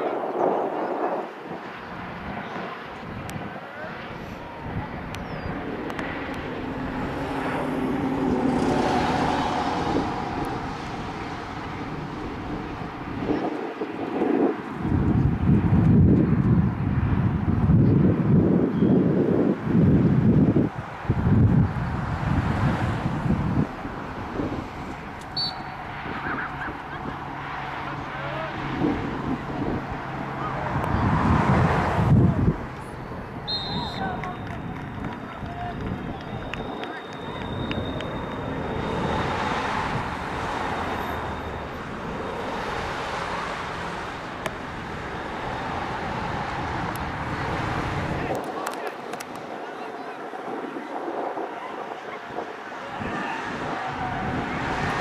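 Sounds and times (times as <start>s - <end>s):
distant engine drone: 0.0s - 15.8s, 20.2s - 49.5s
wind gusting on microphone: 0.0s - 55.0s.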